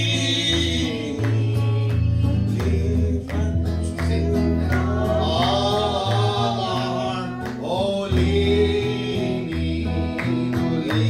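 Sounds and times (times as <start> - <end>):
person singing hymn: 0.0 - 11.0
strummed guitar chords: 0.0 - 11.0.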